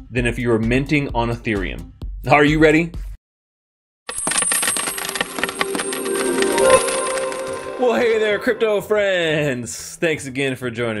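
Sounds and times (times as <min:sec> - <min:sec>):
metal coins clattering: 0:04.1 - 0:07.8.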